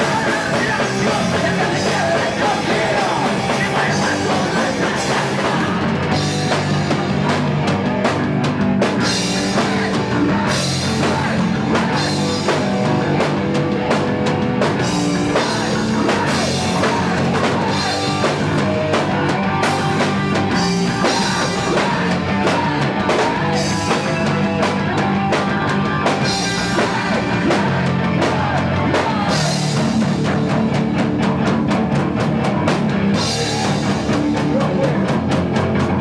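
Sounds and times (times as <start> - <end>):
rock band playing live: 0.0 - 36.0.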